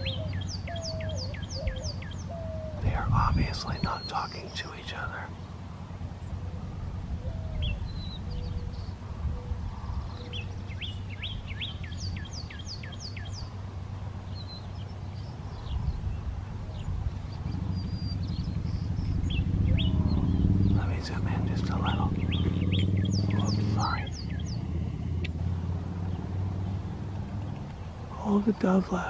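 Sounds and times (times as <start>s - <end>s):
bird whistling song: 0.0s - 2.8s
dove cooing: 0.0s - 4.3s, 6.4s - 10.6s, 19.1s - 24.1s
bird chirps: 0.0s - 5.6s, 6.2s - 13.6s, 14.2s - 25.4s
low background rumble: 0.0s - 29.0s.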